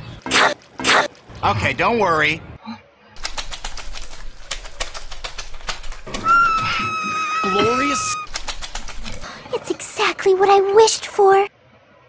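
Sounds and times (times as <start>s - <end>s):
fast uneven sharp clicks: 3.2s - 6.6s, 8.3s - 9.2s.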